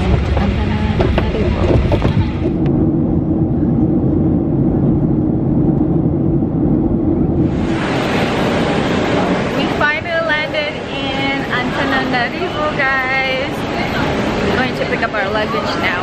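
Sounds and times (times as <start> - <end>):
jet cabin engine drone: 0.0 - 16.0.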